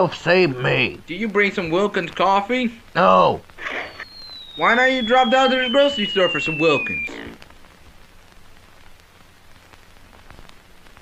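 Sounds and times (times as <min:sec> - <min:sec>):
film soundtrack hiss and crackles: 0:00.0 - 0:11.0
person speaking: 0:04.6 - 0:07.3.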